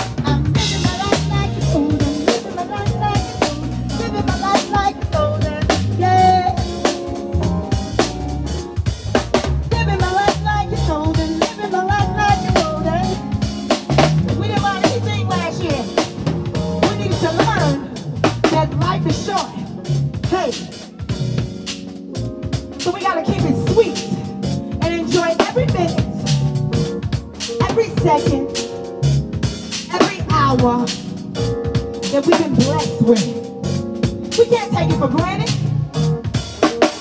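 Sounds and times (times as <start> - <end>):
low bass line: 0.0 - 11.3, 11.9 - 22.5, 25.6 - 27.2, 28.0 - 29.5, 30.3 - 36.4
drum kit steady beat: 0.0 - 37.0
synthesizer keyboard: 11.2 - 37.0.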